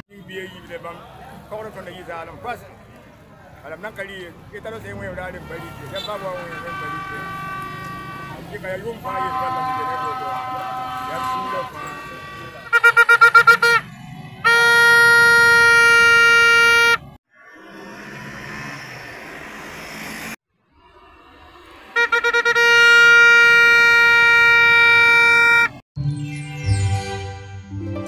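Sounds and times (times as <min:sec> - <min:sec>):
street noise: 0:00.0 - 0:28.0
horn toots and blast: 0:05.3 - 0:17.2, 0:20.9 - 0:25.8.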